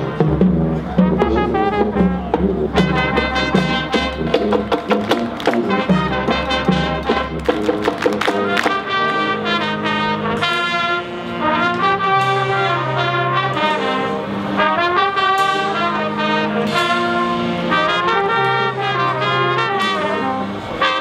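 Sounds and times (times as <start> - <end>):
held low-brass notes: 0.0 - 21.0
marching band playing: 0.0 - 21.0.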